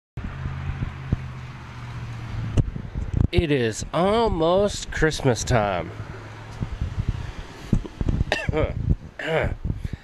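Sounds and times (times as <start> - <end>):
outdoor background noise: 0.2 - 10.0.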